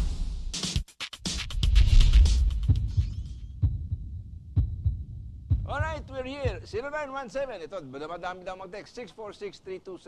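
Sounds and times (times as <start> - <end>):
heartbeat thumps: 1.4 - 6.9.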